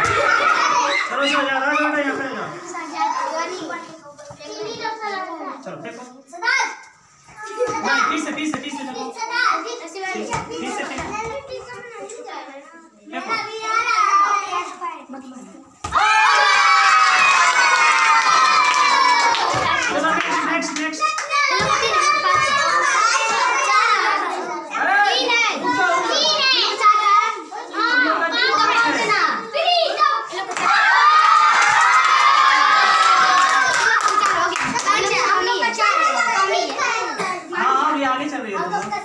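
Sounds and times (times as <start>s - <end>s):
children shouting and cheering: 0.0s - 2.2s, 15.8s - 37.6s.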